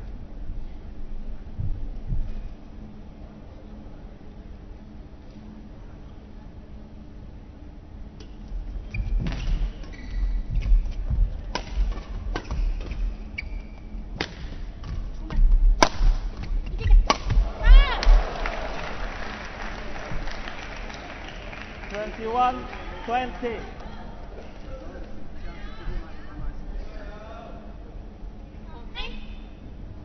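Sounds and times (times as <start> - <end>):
rackets striking shuttlecock: 15.8 - 17.5
crowd noise: 16.8 - 27.9.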